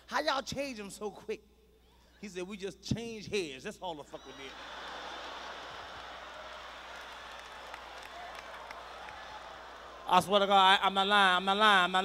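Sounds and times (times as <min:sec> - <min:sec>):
audience laughing: 0:04.3 - 0:10.1
audience applauding: 0:04.3 - 0:10.2.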